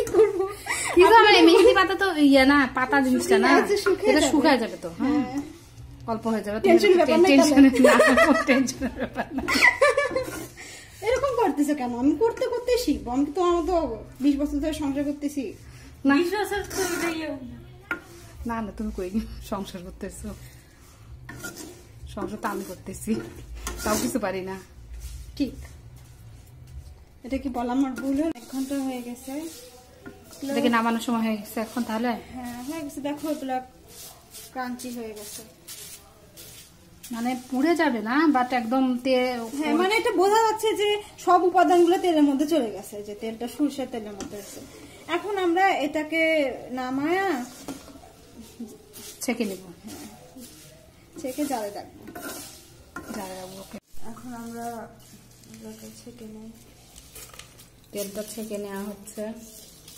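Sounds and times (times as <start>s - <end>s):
leaves sizzling in oil: 0.0s - 59.9s
metal spatula scraping a pan: 0.0s - 59.9s.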